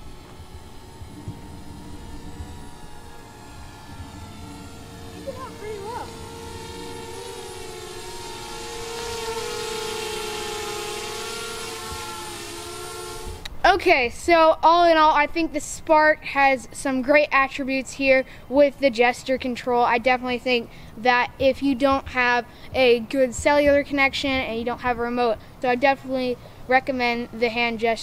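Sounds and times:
drone propellers humming: 0.0s - 15.6s.

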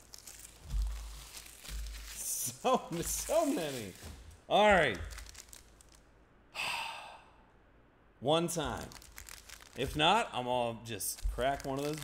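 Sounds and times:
foil wrapper crinkling: 0.0s - 6.0s, 8.6s - 10.2s, 10.9s - 12.0s.

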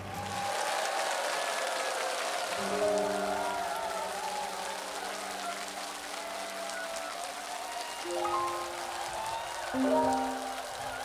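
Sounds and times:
audience applauding: 0.0s - 11.0s
instrumental music: 8.1s - 8.9s, 9.7s - 10.8s.

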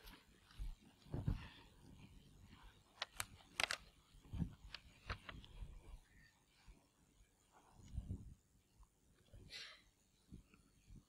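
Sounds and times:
sharp clicks: 3.0s - 3.9s.

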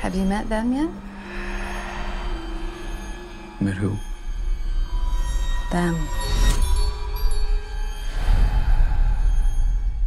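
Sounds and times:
held hum-like tone: 0.0s - 10.0s
low rumbling drone: 0.0s - 10.0s.

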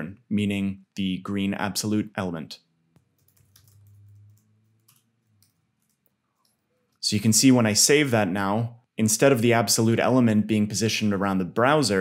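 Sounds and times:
faint low hum: 0.0s - 9.2s
computer keyboard typing: 3.0s - 6.8s.

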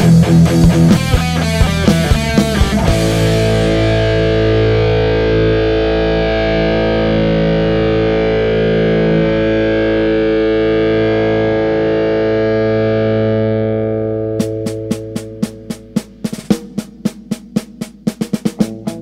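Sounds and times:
distorted electric guitar chord: 0.0s - 16.3s
bass guitar: 0.0s - 16.8s, 18.4s - 19.0s.

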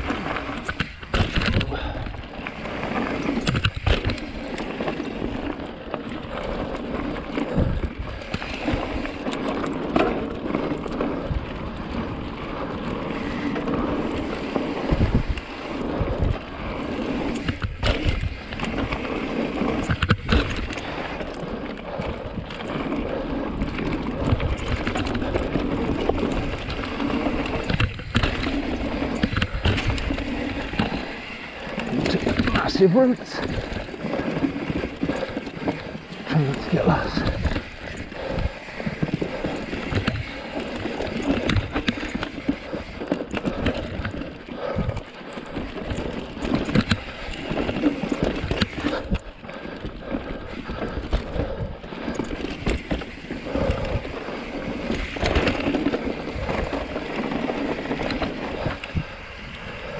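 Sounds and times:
bike tyre rumble on gravel: 0.0s - 59.9s.

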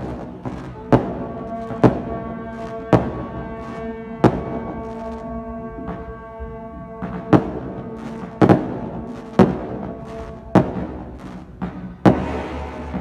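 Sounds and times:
brass band sustained notes: 0.0s - 13.0s
fireworks banging: 0.0s - 13.0s.

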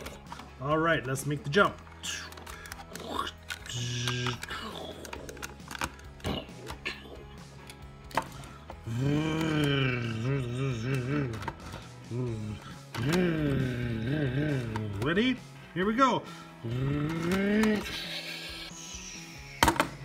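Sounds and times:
man imitating revving engine: 8.9s - 11.4s, 12.1s - 15.0s.

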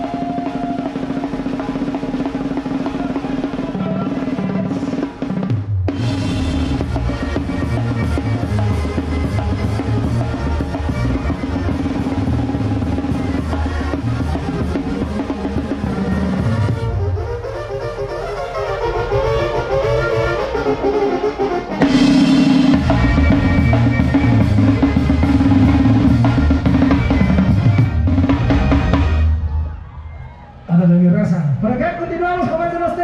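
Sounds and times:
drum kit snare rolls: 0.0s - 17.6s, 21.6s - 29.4s
banda brass band music: 0.0s - 29.5s.

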